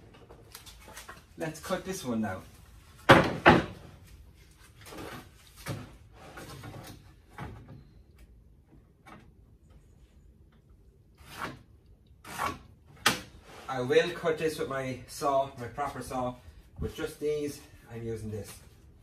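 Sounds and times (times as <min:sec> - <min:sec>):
wooden boards knocking and clattering: 0:03.0 - 0:04.0.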